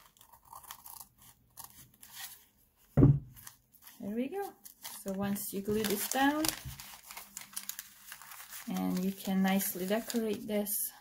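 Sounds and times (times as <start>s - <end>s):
scissors snipping paper: 0.0s - 2.2s.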